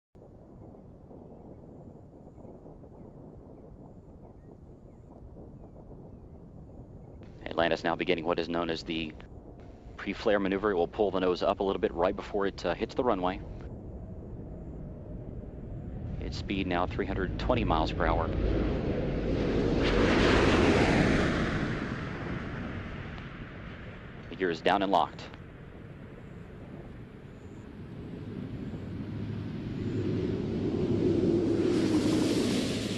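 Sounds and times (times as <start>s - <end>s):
wind rumble on microphone: 0.2s - 32.9s
loud rushing of air: 16.9s - 24.6s, 25.9s - 32.9s.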